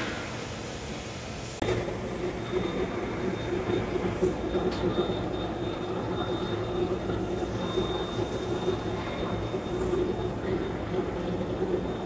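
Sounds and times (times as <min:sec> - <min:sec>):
furnace machinery low rumble: 0:00.0 - 0:12.0.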